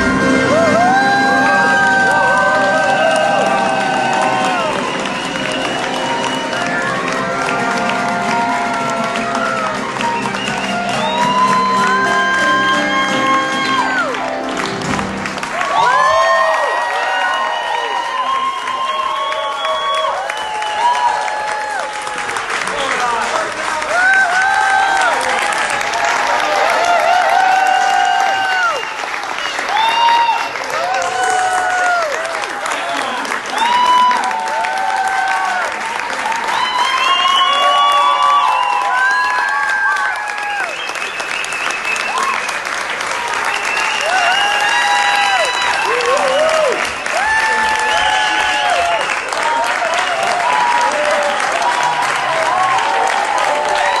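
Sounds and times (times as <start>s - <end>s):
audience clapping: 0.0s - 54.0s
crowd cheering and whooping: 0.0s - 54.0s.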